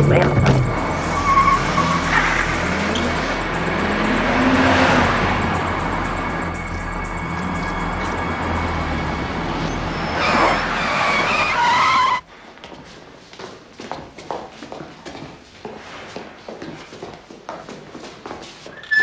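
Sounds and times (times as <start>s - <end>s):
tyres squealing: 0.0s - 3.8s, 8.4s - 12.2s
car engine revving: 0.0s - 12.2s.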